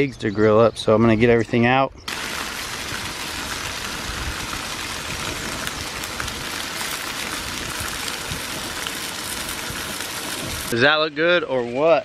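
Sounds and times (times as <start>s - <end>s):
bacon sizzling on a griddle: 2.1s - 11.1s
peppers frying in a skillet: 2.1s - 11.1s.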